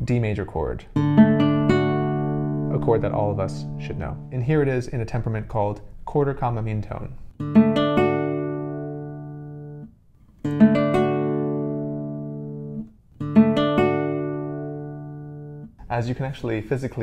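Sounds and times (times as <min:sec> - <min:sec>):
classical guitar strumming chords: 0:00.4 - 0:04.8, 0:07.3 - 0:15.8.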